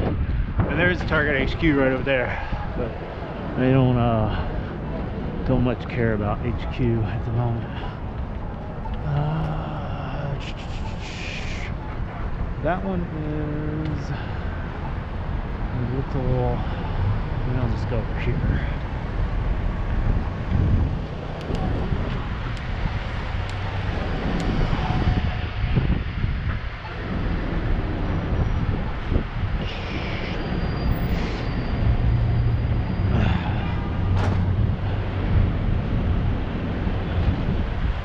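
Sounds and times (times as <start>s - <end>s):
low traffic rumble: 0.0s - 38.0s
vehicles passing: 0.0s - 38.0s.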